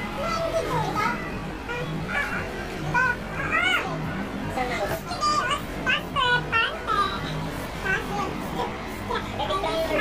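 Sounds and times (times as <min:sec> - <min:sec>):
young girl talking: 0:00.2 - 0:04.1, 0:05.0 - 0:10.0.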